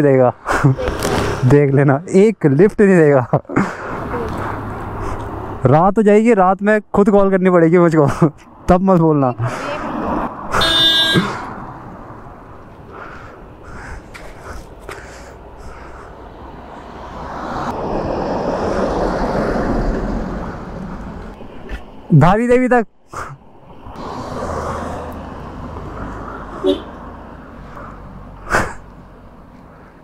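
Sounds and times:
car passing: 3.6s - 5.6s, 8.1s - 22.1s, 23.4s - 30.0s
vehicle driving by: 9.4s - 14.0s, 15.3s - 21.6s, 23.8s - 28.4s
vehicle horn: 10.5s - 11.5s, 26.6s - 27.0s.

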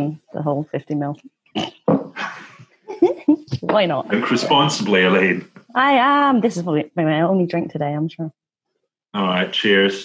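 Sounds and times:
person laughing: 2.2s - 5.4s.

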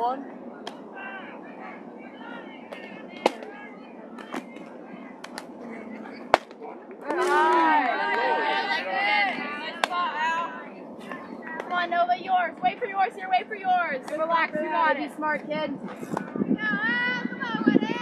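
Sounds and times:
murmur of voices: 0.0s - 18.0s
voices shouting and cheering: 0.0s - 18.0s
faint claps: 0.6s - 0.8s, 2.7s - 3.5s, 4.2s - 5.5s, 6.3s - 8.3s
bat striking ball: 2.7s - 3.5s, 6.3s - 7.7s.

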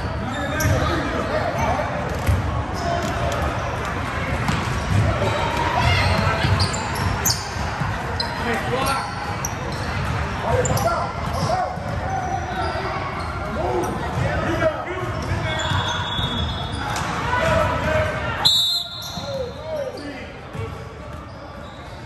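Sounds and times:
sneakers squeaking: 0.0s - 22.0s
basketball bouncing on court: 2.1s - 3.3s, 4.3s - 8.3s, 9.7s - 12.6s.

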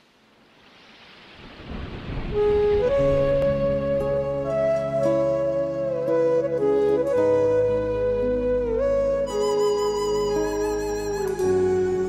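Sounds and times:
rain-like hiss: 0.0s - 12.0s.

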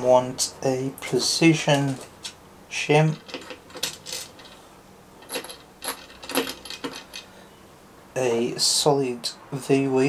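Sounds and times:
small metal parts clinking: 3.1s - 7.4s.

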